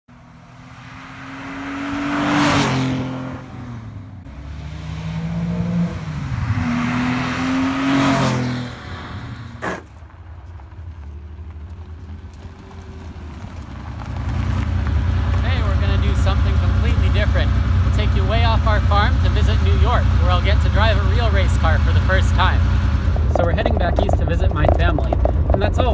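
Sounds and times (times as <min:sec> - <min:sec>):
car engine accelerating past: 0:00.1 - 0:09.8, 0:10.6 - 0:18.0
car engine idling: 0:03.2 - 0:25.9.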